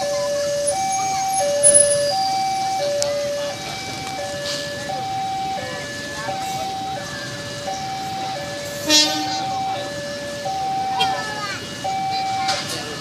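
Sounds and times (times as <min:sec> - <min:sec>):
level crossing alarm ding-dong: 0:00.0 - 0:13.0.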